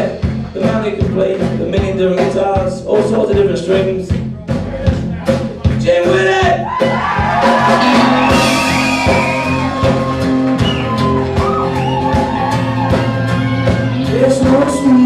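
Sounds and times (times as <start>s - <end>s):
bass: 0.0s - 15.0s
steady drum beat: 0.0s - 15.0s.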